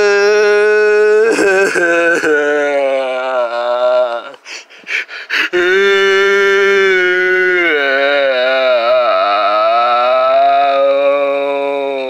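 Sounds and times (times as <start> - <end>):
person crying wail: 0.0 - 4.4, 5.2 - 12.0.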